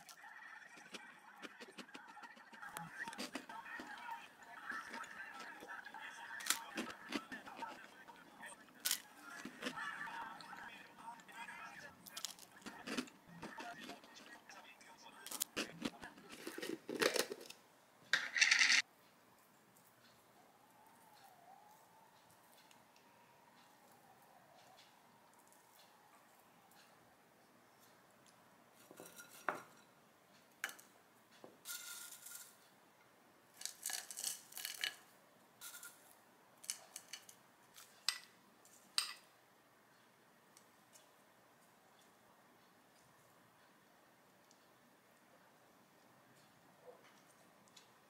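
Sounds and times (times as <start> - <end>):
crisp biting and chewing: 0.0 - 5.7, 6.4 - 8.0, 8.7 - 9.8, 12.0 - 14.4, 15.2 - 17.6, 33.6 - 35.1
granola rustling and crackling: 33.6 - 35.1.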